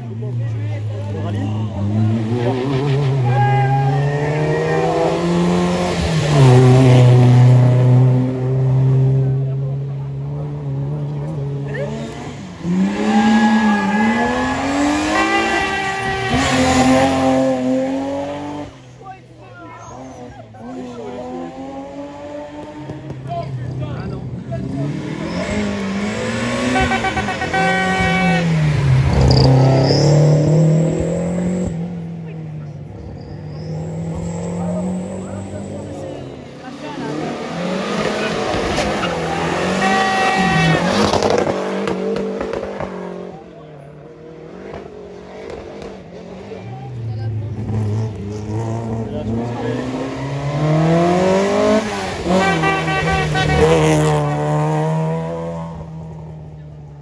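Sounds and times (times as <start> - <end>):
rally car engines revving: 0.0 - 57.0.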